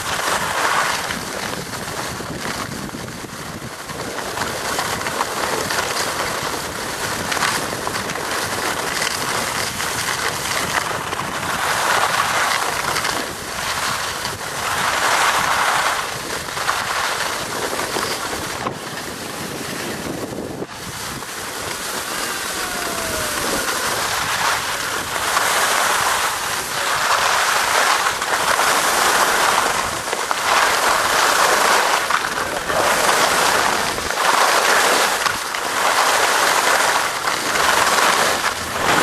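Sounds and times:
ski edges scraping on snow: 0:00.0 - 0:39.0
wind rushing over microphone: 0:00.0 - 0:39.0.

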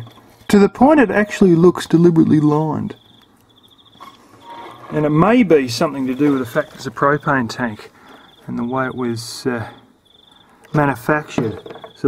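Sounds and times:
high-pitched insect trilling: 0:00.0 - 0:12.0.

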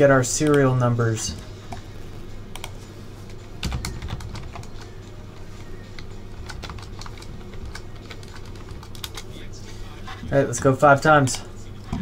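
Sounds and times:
computer keyboard typing: 0:03.6 - 0:04.9, 0:06.0 - 0:09.3.

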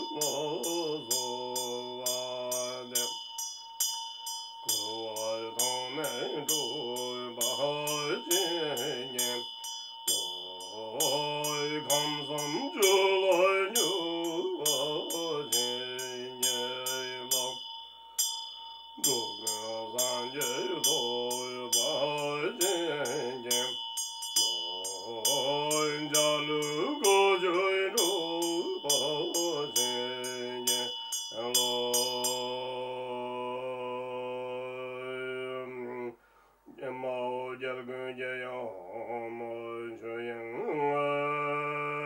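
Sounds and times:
man chanting in a low voice: 0:00.0 - 0:03.2, 0:04.7 - 0:09.5, 0:10.1 - 0:17.6, 0:19.0 - 0:23.8, 0:24.5 - 0:42.0
hand bell ringing: 0:00.0 - 0:32.7.

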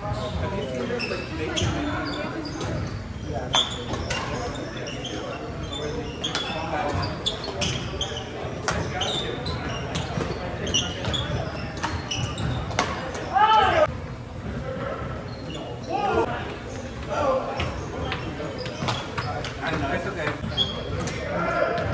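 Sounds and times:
sneakers squeaking on hardwood: 0:00.1 - 0:13.8, 0:17.5 - 0:21.9.

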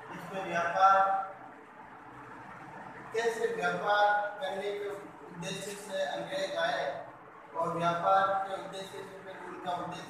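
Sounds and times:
faint room noise: 0:00.0 - 0:10.0
man speaking: 0:00.1 - 0:01.4, 0:03.2 - 0:07.0, 0:07.6 - 0:10.0.

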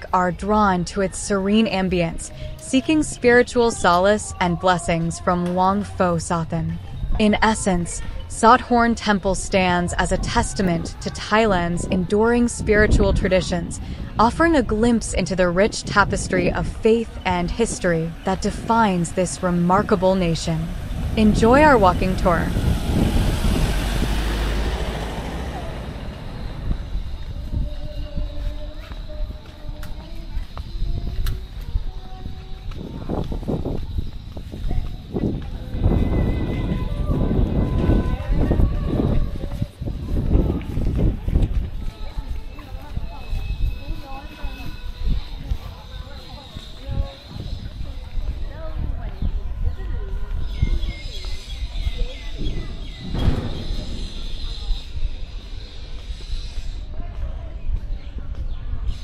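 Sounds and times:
low outdoor rumble: 0:00.0 - 0:27.9
pickup truck driving past: 0:18.1 - 0:27.4.

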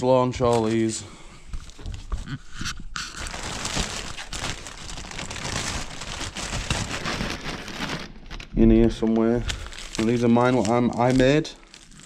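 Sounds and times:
plastic bag crinkling: 0:00.4 - 0:01.0, 0:01.6 - 0:12.0.

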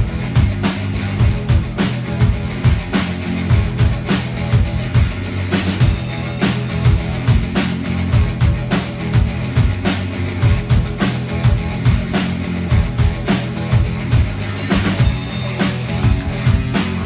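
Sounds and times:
drum kit beat: 0:00.0 - 0:17.0
electric guitars: 0:00.0 - 0:17.0.

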